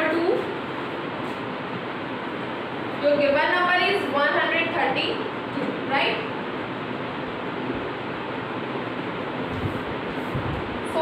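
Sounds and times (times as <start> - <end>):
steady rushing noise: 6.6 - 11.0.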